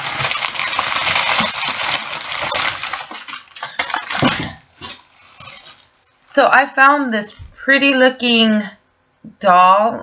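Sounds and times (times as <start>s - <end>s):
plastic bag rustling: 0.0s - 6.2s.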